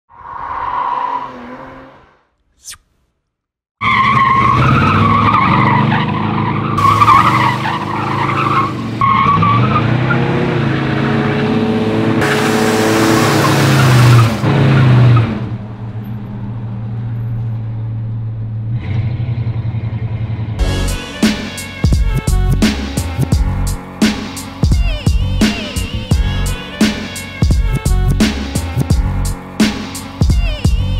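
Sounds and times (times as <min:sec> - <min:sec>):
tires squealing on asphalt: 0:00.1 - 0:02.3, 0:03.8 - 0:17.7
car engine revving: 0:03.9 - 0:16.6.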